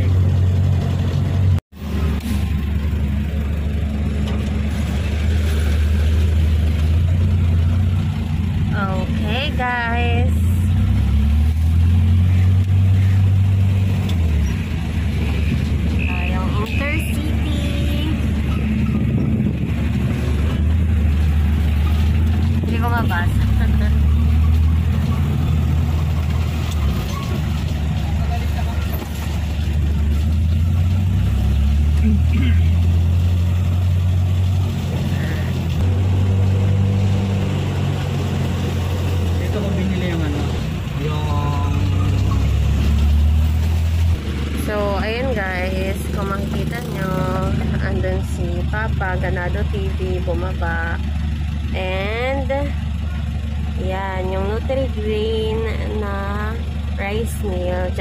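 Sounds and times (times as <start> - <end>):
truck engine drone: 0.0 - 58.0.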